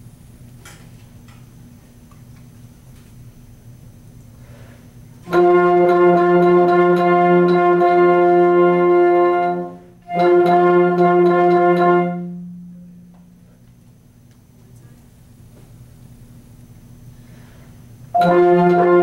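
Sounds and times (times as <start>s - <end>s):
instrumental ensemble playing chords: 5.3s - 13.1s, 18.2s - 19.0s.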